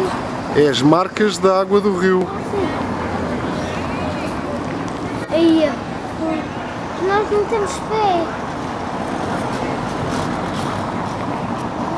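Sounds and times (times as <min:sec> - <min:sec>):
low rumble of traffic: 0:00.0 - 0:11.9.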